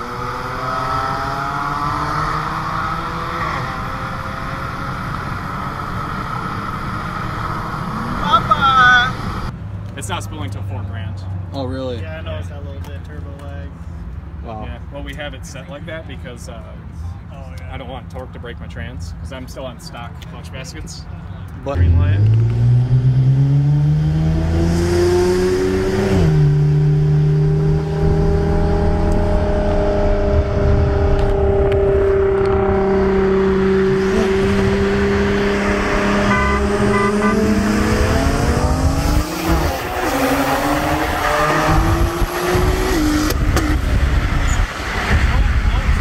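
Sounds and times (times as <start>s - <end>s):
car engine accelerating: 0.0s - 9.5s, 21.7s - 46.0s
short beeps: 36.2s - 37.6s.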